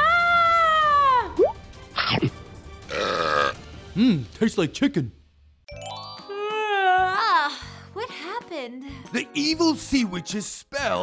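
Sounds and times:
loud cartoon burp: 2.9 - 3.6.

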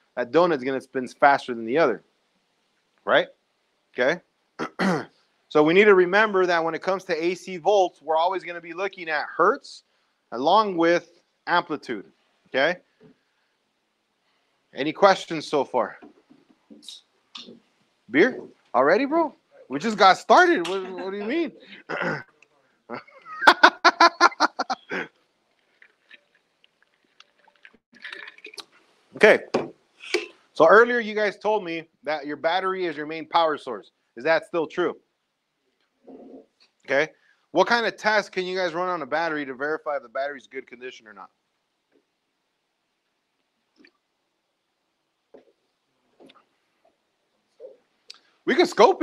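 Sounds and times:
person laughing: 20.7 - 22.3, 22.9 - 25.1.

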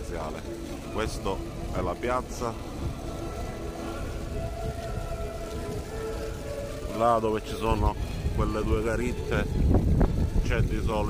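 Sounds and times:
distant christmas music: 0.0 - 11.0
steady low rumble: 0.0 - 11.0.

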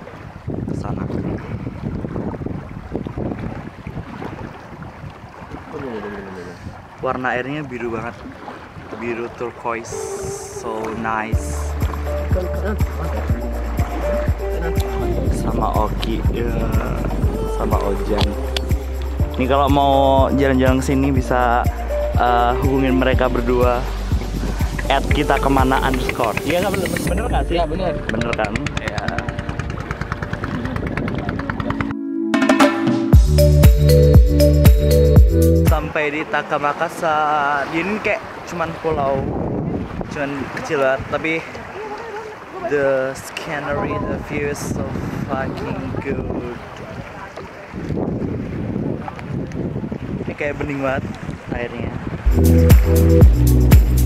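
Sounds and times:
wind buffeting microphone: 0.0 - 32.0, 37.9 - 53.8
person speaking: 9.8 - 23.9, 24.8 - 29.5
small boat motor running: 27.9 - 31.9.

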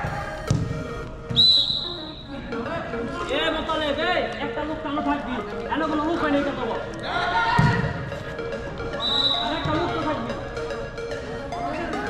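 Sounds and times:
background music: 0.0 - 12.0
sports whistle blast: 1.2 - 2.3, 9.0 - 9.7.

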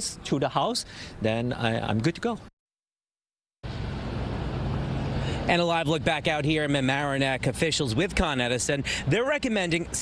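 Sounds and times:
outdoor street noise: 0.0 - 2.5, 3.6 - 10.0
low engine hum: 3.6 - 9.1.

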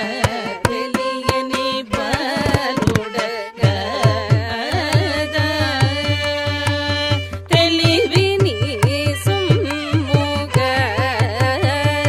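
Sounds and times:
violin: 0.0 - 12.0
women singing: 0.0 - 12.0
hand drum strokes: 2.0 - 3.1.

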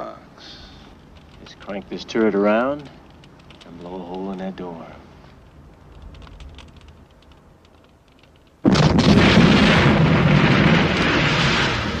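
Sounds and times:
faint clicks: 0.8 - 8.6
flying debris: 6.0 - 12.0
loud explosion: 8.6 - 12.0.

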